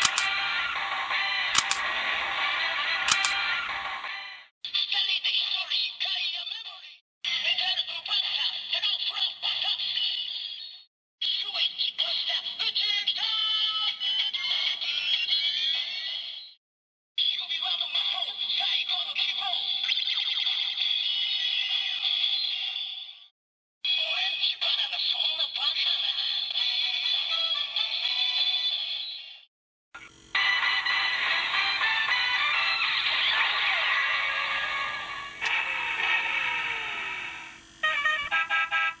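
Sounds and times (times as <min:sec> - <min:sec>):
synthesized toy voice: 0:00.0 - 0:00.8, 0:01.5 - 0:04.1, 0:04.7 - 0:16.4, 0:17.2 - 0:23.1, 0:23.9 - 0:29.4, 0:30.0 - 0:39.0
tinny toy music: 0:00.0 - 0:04.4, 0:30.0 - 0:39.0.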